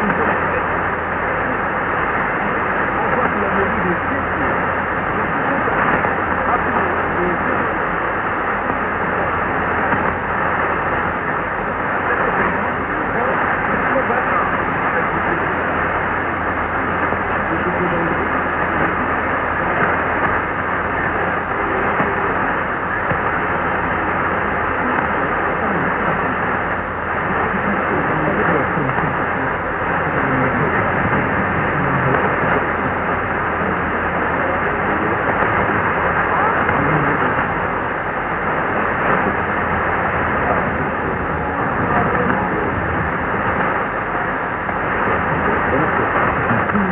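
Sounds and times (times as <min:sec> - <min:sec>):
faint voice on radio: 0:00.0 - 0:46.9
radio static and hiss: 0:00.0 - 0:46.9.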